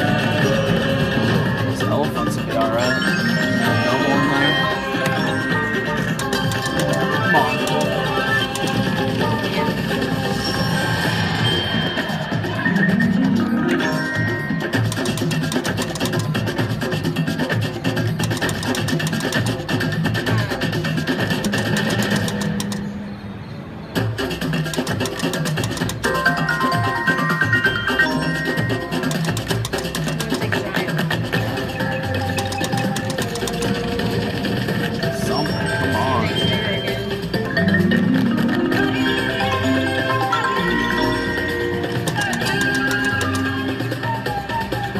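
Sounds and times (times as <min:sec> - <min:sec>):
slot machine music and jingles: 0:00.0 - 0:23.1, 0:24.2 - 0:44.6.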